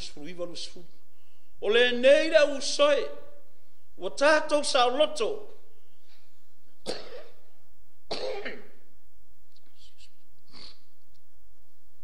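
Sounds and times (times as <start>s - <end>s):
man coughing: 6.8s - 7.4s, 8.1s - 8.8s.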